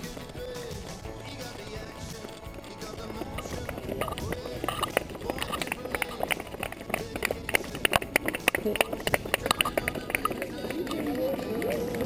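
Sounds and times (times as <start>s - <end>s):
running footsteps on pavement: 0.0s - 12.0s
trekking pole tips tapping: 0.0s - 12.0s
people clapping: 4.3s - 12.0s.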